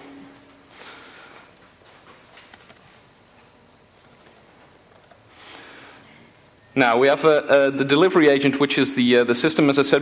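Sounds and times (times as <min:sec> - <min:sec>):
steady hiss: 0:00.0 - 0:10.0
laptop keyboard keystrokes: 0:02.4 - 0:02.9.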